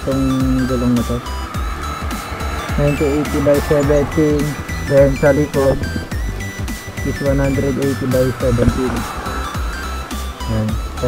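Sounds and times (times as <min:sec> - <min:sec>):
background music: 0:00.0 - 0:11.0
steady low rumble: 0:00.6 - 0:11.0
man speaking: 0:02.8 - 0:05.9, 0:07.1 - 0:09.0.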